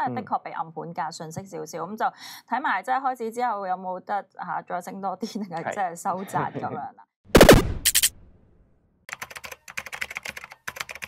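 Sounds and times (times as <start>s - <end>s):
keyboard typing clicks: 9.1s - 11.0s.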